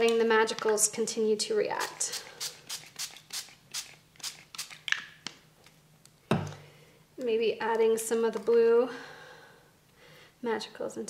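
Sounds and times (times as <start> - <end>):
spray bottle spritzing mist: 1.8 - 4.8.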